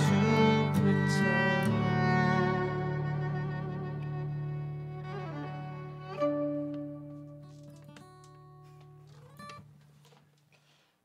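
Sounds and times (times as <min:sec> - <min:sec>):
acoustic guitar chord ringing: 0:00.0 - 0:04.8.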